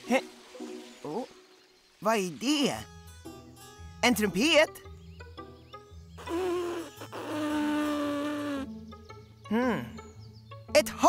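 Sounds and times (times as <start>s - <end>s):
buzzy trumpet-like toots: 6.2s - 8.7s.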